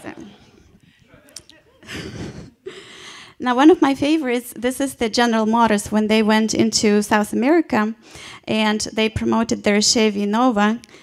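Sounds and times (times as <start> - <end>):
breaths into microphone: 2.1 - 3.4.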